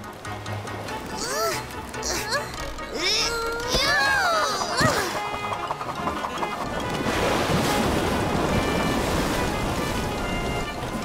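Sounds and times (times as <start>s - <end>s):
background music: 0.0s - 11.0s
stormy sea waves rushing: 3.8s - 11.0s.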